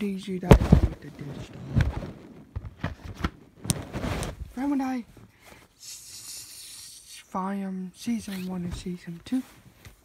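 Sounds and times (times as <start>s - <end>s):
plastic cases clicking and knocking: 1.7s - 3.8s.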